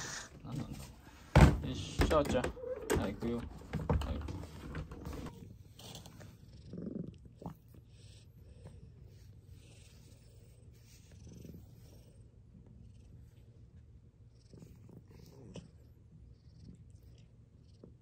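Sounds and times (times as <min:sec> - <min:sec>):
cat purring faintly: 0:04.1 - 0:18.0.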